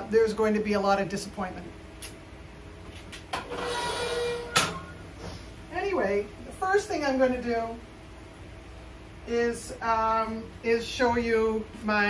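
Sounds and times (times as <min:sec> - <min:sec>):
lid scraping with squeal: 0:03.4 - 0:05.0.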